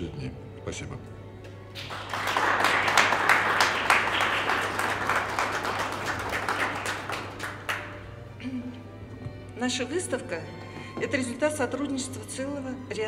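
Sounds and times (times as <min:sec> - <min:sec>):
audience applauding: 0:01.7 - 0:08.2.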